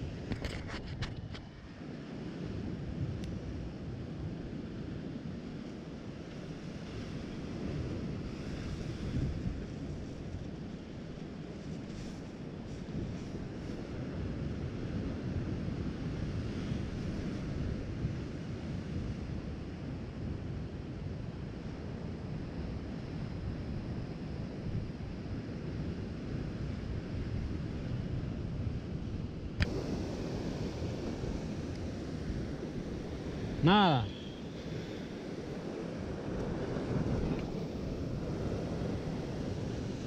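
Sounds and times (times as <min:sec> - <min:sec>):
wind buffeting microphone: 0:06.5 - 0:11.6, 0:24.8 - 0:40.0.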